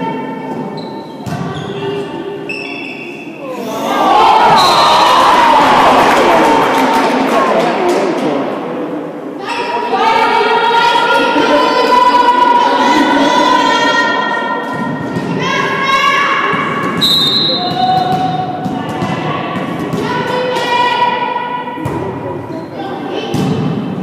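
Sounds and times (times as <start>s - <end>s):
young voices cheering: 3.7s - 6.9s.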